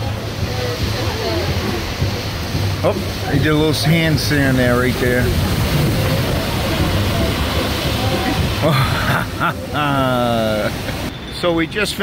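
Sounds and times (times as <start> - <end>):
wind noise: 0.0 - 9.7
faint voices: 0.0 - 10.8
ocean surf breaking: 0.0 - 12.0.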